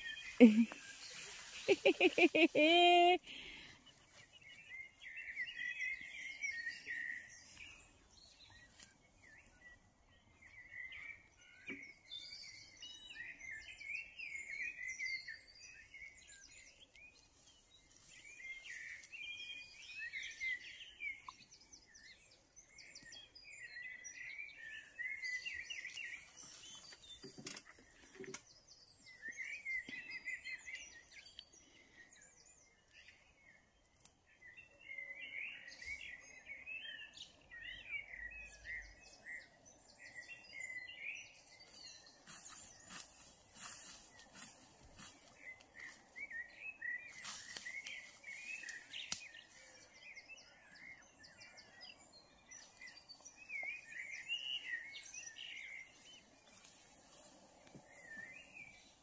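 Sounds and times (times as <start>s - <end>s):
faint outdoor background noise: 0.0s - 59.0s
songbird singing: 0.0s - 59.0s.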